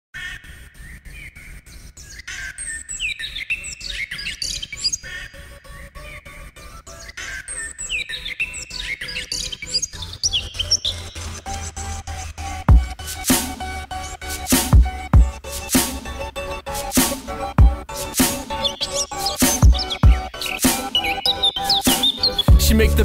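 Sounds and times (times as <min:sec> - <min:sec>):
birds chirping: 0:00.2 - 0:23.0
low bass: 0:22.5 - 0:23.0.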